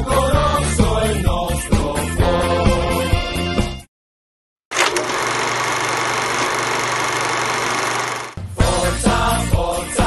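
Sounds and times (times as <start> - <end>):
film projector whirring rattle: 4.7 - 8.4.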